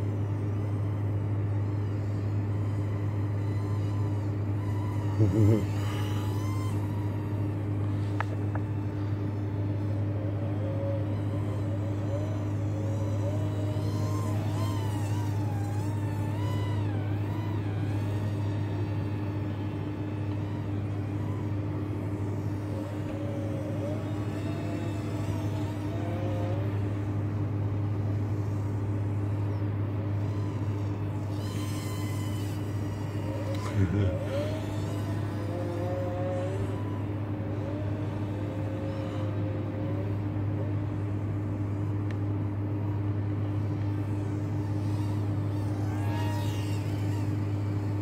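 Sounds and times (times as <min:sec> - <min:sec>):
quadcopter motors whining: 0:00.0 - 0:48.0
steady low hum: 0:00.0 - 0:48.0.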